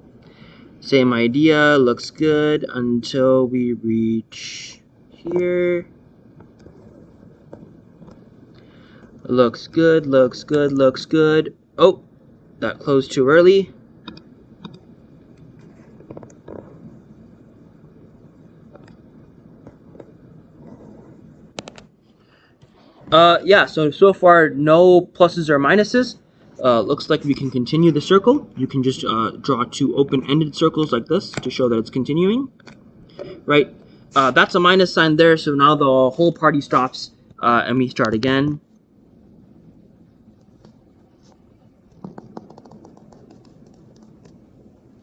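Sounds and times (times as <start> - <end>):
stylus scratching on tablet: 6.5 - 8.3, 15.5 - 17.1, 19.6 - 21.5, 40.5 - 44.5
stylus clicking on tablet: 41.9 - 44.4.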